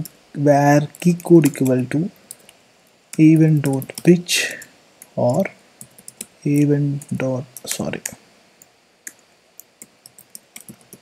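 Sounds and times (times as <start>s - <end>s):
computer keyboard keystrokes: 0.9s - 1.7s, 3.2s - 4.1s, 5.2s - 8.2s, 9.1s - 11.0s.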